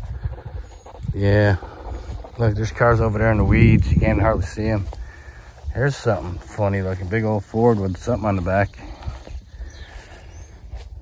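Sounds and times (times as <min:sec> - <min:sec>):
microphone handling noise: 0:00.0 - 0:07.0
bird chirp: 0:00.0 - 0:11.0
footsteps through long grass: 0:00.0 - 0:11.0
wind rumble on microphone: 0:00.0 - 0:11.0.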